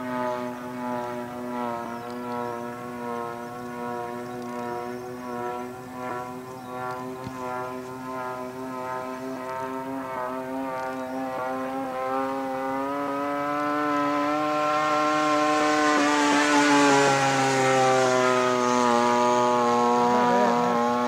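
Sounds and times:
model airplane engine droning: 0.0s - 21.0s.

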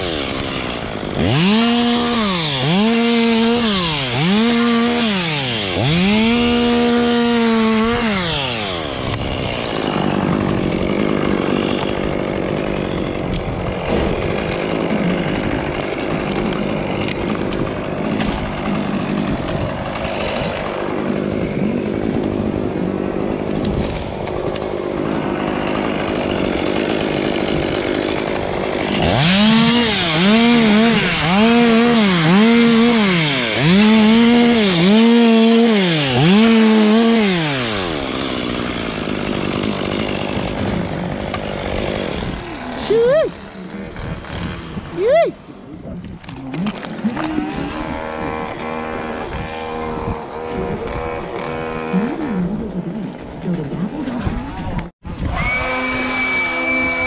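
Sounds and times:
rasping cutting of palm fronds: 0.0s - 45.2s, 46.2s - 57.0s
chainsaw revving: 0.0s - 57.0s.

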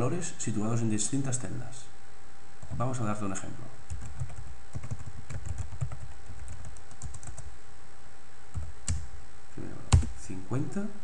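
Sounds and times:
computer keyboard typing: 3.9s - 7.5s.

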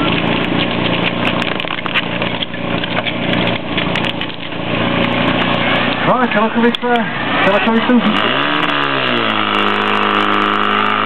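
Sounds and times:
pump engine running at high revs: 0.0s - 11.0s.

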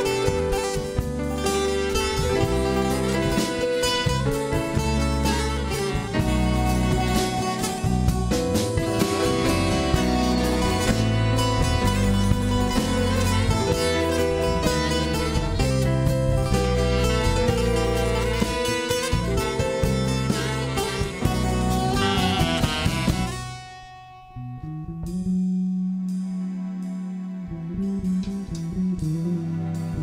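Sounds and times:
held low note: 0.0s - 30.0s
jazz fusion band playing: 0.0s - 30.0s
plucked strings: 0.0s - 30.0s.

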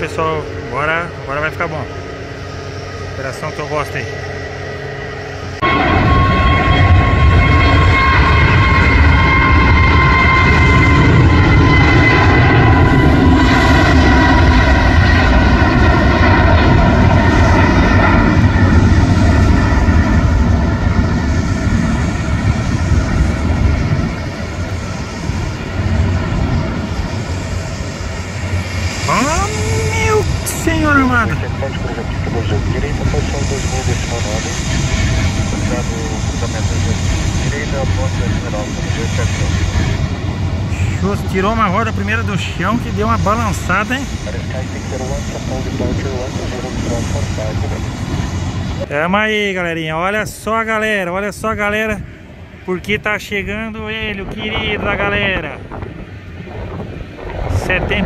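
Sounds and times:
jet engines roaring at takeoff: 0.0s - 58.0s.

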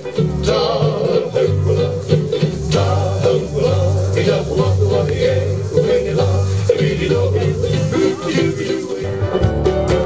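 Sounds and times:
hula music: 0.0s - 10.0s.

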